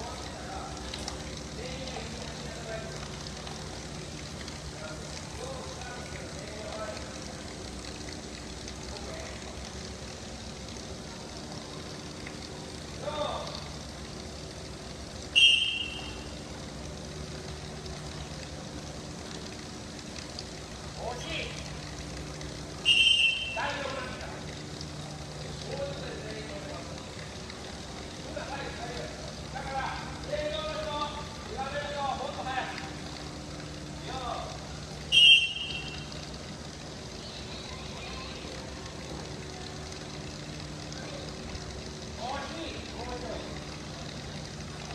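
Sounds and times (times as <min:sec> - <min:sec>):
steady low hum: 0:00.0 - 0:44.9
referee whistle blasts: 0:15.3 - 0:16.2, 0:22.8 - 0:23.6, 0:35.1 - 0:36.1
children calling out: 0:37.2 - 0:38.6.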